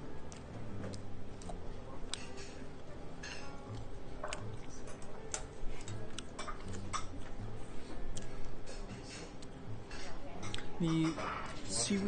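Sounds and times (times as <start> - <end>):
low background hum: 0.0 - 12.0
mouth chewing with clicks: 0.3 - 2.6, 3.7 - 7.4, 8.1 - 9.6, 10.4 - 10.7.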